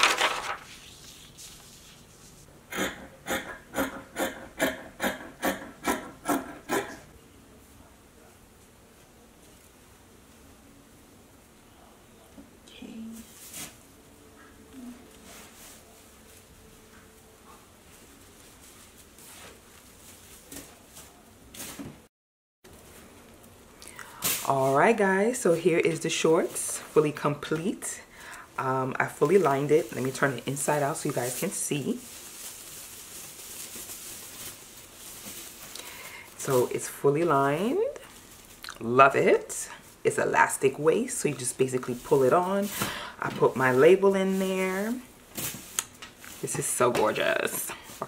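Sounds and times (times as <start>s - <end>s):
steady low hiss: 6.9s - 21.9s, 22.7s - 48.0s
fabric rustling: 13.2s - 21.9s, 29.0s - 40.1s.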